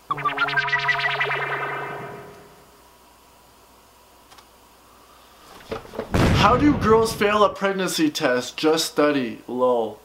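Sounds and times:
warbling echoing musical sting: 0.0s - 2.8s.

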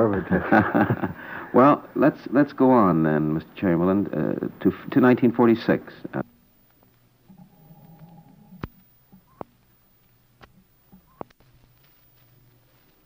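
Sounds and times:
faint low hum: 0.0s - 13.0s.

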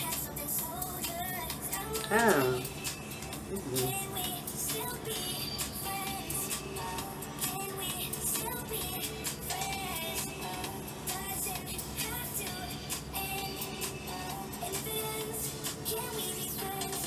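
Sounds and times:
electronic pop song with vocals: 0.0s - 17.0s.

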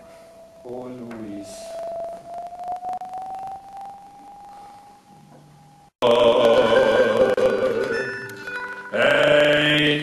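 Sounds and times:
thin held note rising in pitch: 0.0s - 5.9s.

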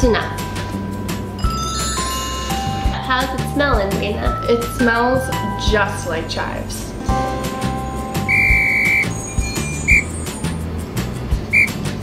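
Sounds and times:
background music with steady beat: 0.0s - 12.0s
high clear whistle: 8.2s - 10.6s, 11.5s - 11.8s.

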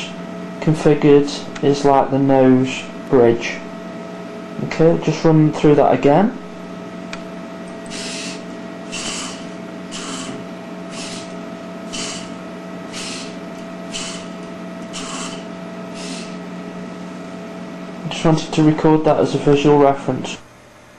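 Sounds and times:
steady hum: 0.0s - 20.9s
servos buzzing whir: 7.1s - 16.8s.

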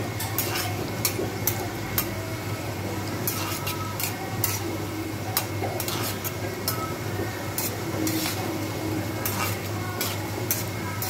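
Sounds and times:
oil sizzling around frying food: 0.0s - 11.0s.

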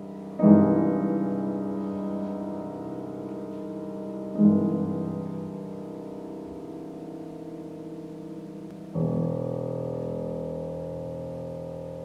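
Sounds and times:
held piano chord: 0.0s - 12.0s.

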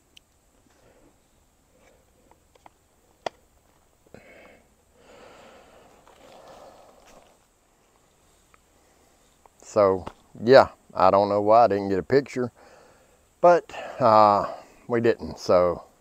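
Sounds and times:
soft rustling: 5.6s - 10.4s.

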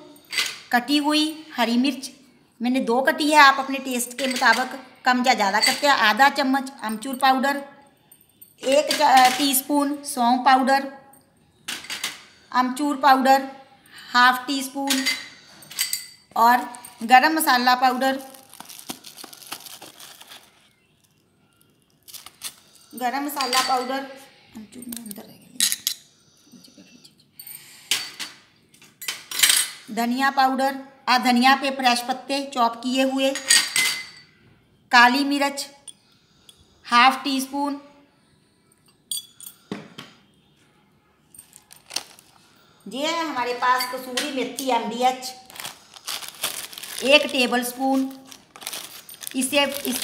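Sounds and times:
glass jar clinking: 14.9s - 17.0s, 38.9s - 39.7s
cardboard box crinkling: 18.2s - 20.7s, 41.6s - 42.4s, 45.5s - 47.3s, 48.0s - 50.0s.

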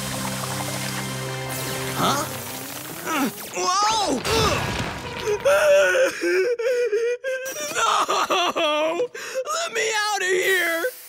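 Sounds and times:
hiss: 0.5s - 3.5s, 10.4s - 11.0s.

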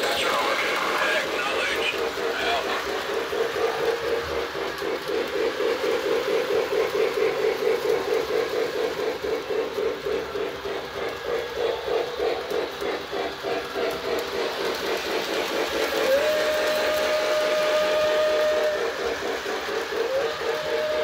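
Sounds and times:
toy steam train chuffing: 0.0s - 21.0s
steam whistle: 16.0s - 21.0s.

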